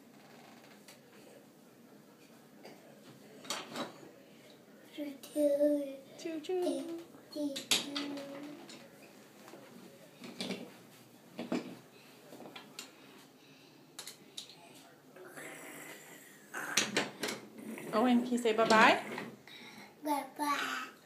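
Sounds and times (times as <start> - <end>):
child's voice: 5.0 - 6.0, 6.6 - 8.6, 20.0 - 21.0.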